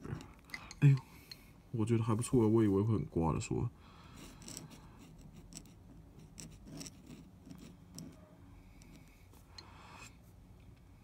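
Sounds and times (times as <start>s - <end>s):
pen nib scratching on paper: 4.2s - 9.2s.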